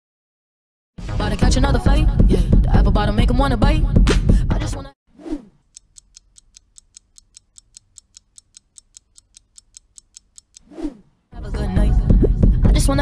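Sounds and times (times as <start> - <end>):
whoosh: 5.1 - 5.6, 10.6 - 11.2
clock-like ticks: 5.6 - 10.7.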